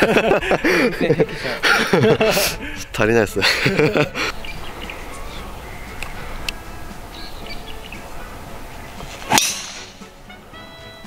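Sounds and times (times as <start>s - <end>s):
golf club striking ball: 8.9s - 10.2s.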